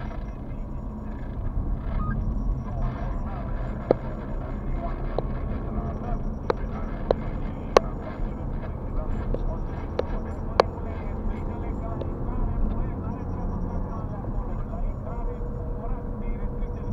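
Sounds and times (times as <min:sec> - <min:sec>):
sharp clicks: 0:00.0 - 0:14.7
car engine and tyres rumbling: 0:00.0 - 0:16.9
indistinct talk: 0:00.0 - 0:16.9.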